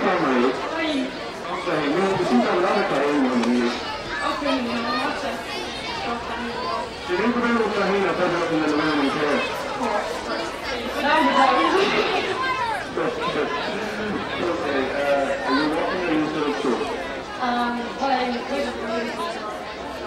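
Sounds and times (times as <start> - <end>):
background chatter: 0.0 - 20.0
man speaking into a microphone: 1.5 - 3.8, 7.1 - 9.6, 12.8 - 16.9.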